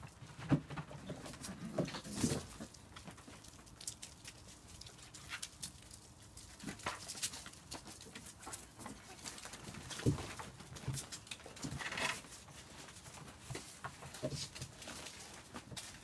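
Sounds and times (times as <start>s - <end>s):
puppies scratching and rustling: 0.0s - 16.0s.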